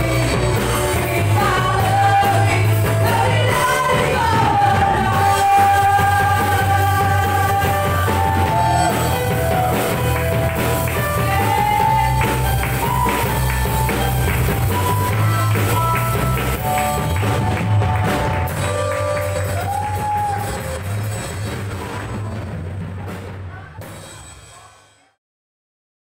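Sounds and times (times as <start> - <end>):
singers holding notes: 0.0 - 13.4
electric guitar: 0.0 - 22.9
keyboard: 0.0 - 24.7
drum kit: 0.0 - 25.1.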